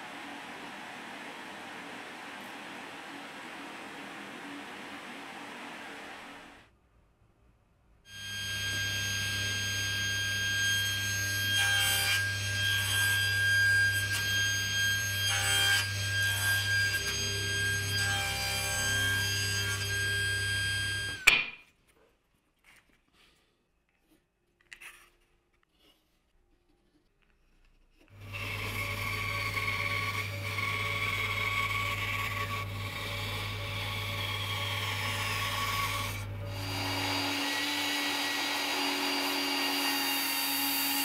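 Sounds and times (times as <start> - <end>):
table saw whine: 8.1 - 21.3, 28.2 - 41.0
saw blade cutting wood: 28.1 - 41.0.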